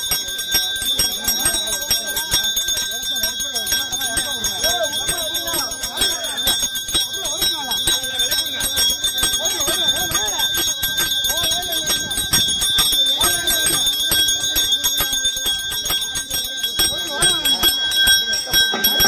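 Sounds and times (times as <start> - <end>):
crowd voices: 0.0 - 19.0
hand bell ringing rapidly: 0.0 - 19.0.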